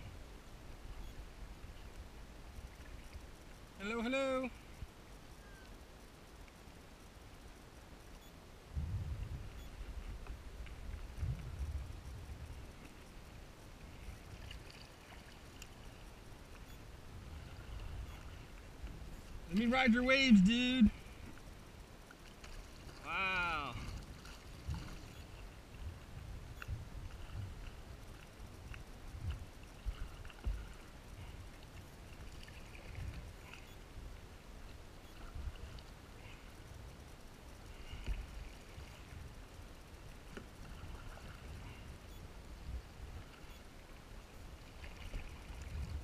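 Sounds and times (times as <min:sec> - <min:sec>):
paddle strokes in water: 0:09.2 - 0:46.0
water lapping against board: 0:23.7 - 0:25.5.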